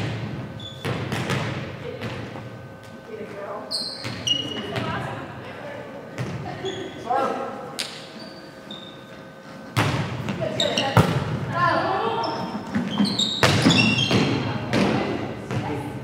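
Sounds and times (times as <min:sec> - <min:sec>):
volleyball hits echoing: 0:00.0 - 0:02.4, 0:09.8 - 0:11.6, 0:12.8 - 0:15.8.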